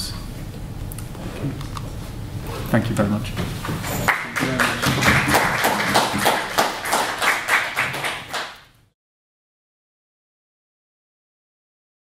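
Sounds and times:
audience applauding: 0:03.7 - 0:08.7.

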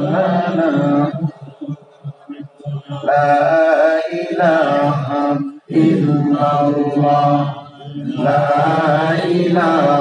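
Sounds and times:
man singing a devotional chant: 0:00.0 - 0:10.0.

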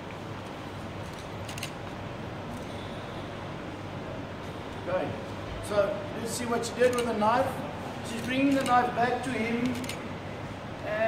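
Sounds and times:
cafe room ambience: 0:00.0 - 0:11.0.

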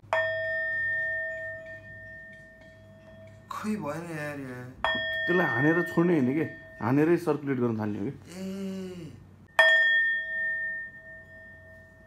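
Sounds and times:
metal singing bowl ringing: 0:00.0 - 0:07.6, 0:09.5 - 0:12.0.

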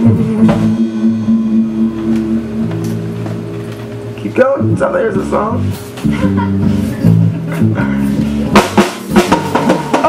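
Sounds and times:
drum hit: 0:00.0 - 0:04.1, 0:08.4 - 0:10.0
bass guitar: 0:00.0 - 0:10.0
electric guitar chords: 0:00.0 - 0:10.0.

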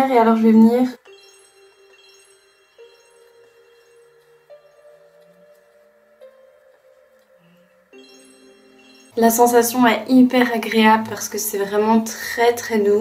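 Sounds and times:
soft chime-like music: 0:00.1 - 0:13.0.

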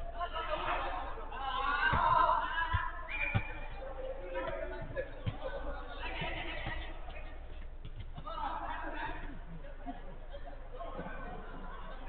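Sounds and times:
players shouting: 0:00.2 - 0:07.2.

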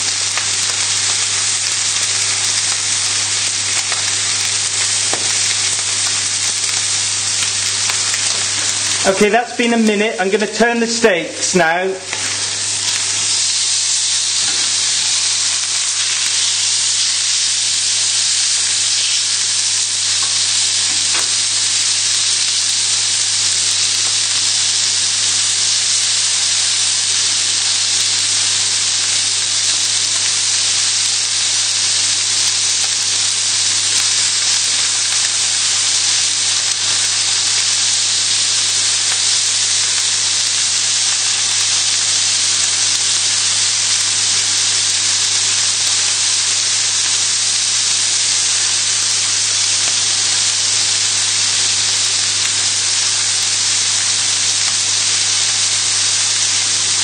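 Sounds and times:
steaks sizzling in a frying pan: 0:00.0 - 0:57.0.

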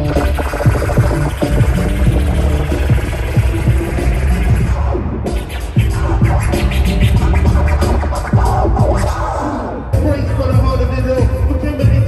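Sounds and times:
turntable scratching: 0:00.0 - 0:10.0
heavy bass beat: 0:00.0 - 0:12.0.

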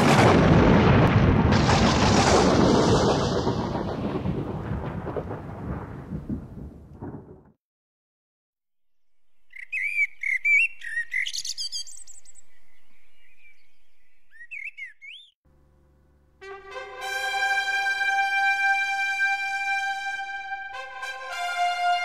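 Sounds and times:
deep rumbling boom: 0:00.0 - 0:07.6
bird chirping and whistling: 0:09.5 - 0:15.4.

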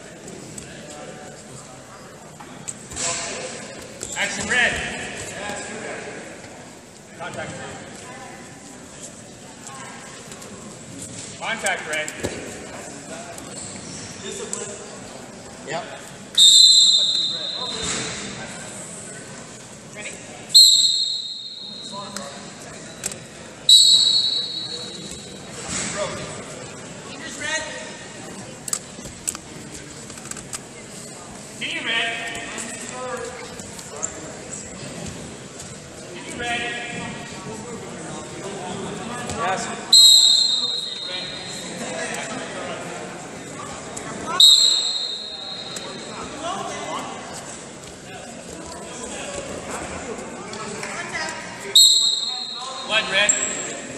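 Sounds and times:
referee's whistle blast: 0:16.4 - 0:18.0, 0:20.6 - 0:22.0, 0:23.7 - 0:25.3, 0:39.9 - 0:41.7, 0:44.3 - 0:46.1, 0:51.8 - 0:53.0.

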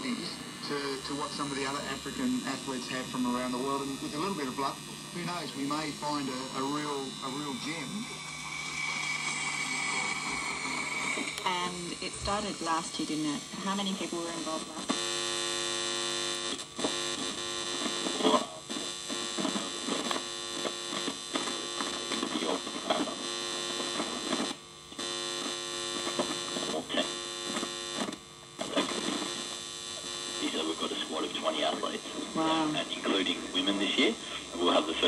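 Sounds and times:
mains hum and buzz: 0:00.0 - 0:35.0
radio crackles: 0:00.0 - 0:35.0.

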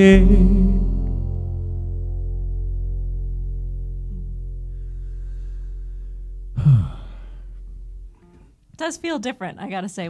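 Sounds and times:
low held musical note: 0:00.0 - 0:08.5
loud sigh: 0:06.6 - 0:07.6.

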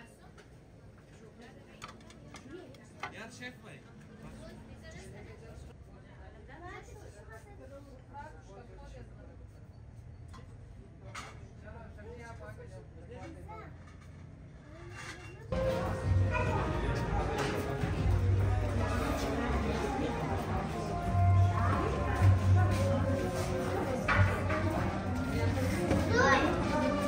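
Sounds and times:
faint voices talking: 0:14.6 - 0:27.0
young children playing: 0:14.7 - 0:23.1, 0:25.2 - 0:27.0.

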